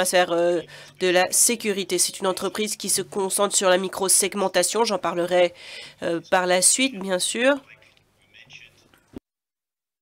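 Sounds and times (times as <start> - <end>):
breathy whispered voice: 0.4 - 1.1.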